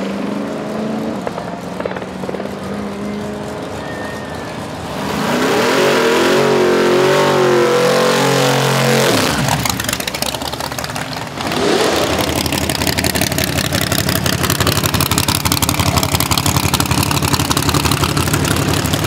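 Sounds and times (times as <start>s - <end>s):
drag racing car passing: 0.0s - 19.0s
car engine revving hard: 4.8s - 10.0s, 11.4s - 18.8s.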